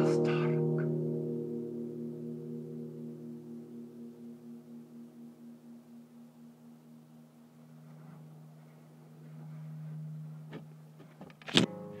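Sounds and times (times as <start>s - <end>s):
guitar strings ringing together: 0.0s - 12.0s.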